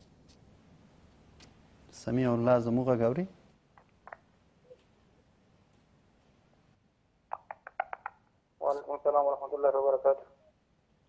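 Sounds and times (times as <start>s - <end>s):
person talking: 8.6s - 10.3s.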